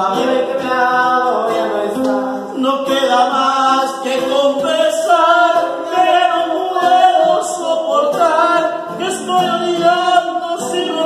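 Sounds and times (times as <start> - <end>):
nylon-string guitar strummed: 0.0 - 11.0
person singing long wavering notes: 5.1 - 11.0.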